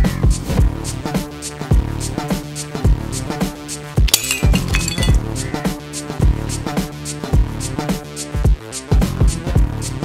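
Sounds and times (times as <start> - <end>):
glass bottle shattering: 4.1 - 5.2.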